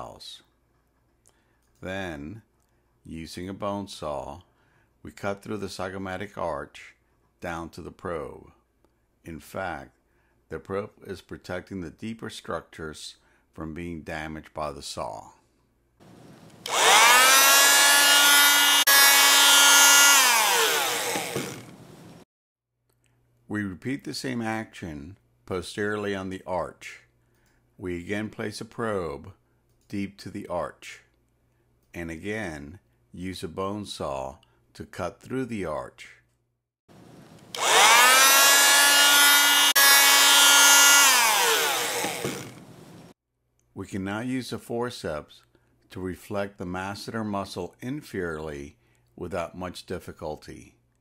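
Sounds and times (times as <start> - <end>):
electric bone saw whining: 16.1 - 22.2, 37.2 - 43.2.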